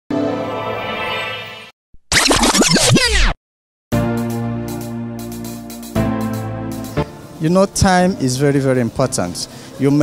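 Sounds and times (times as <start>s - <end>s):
background music: 3.9s - 10.0s.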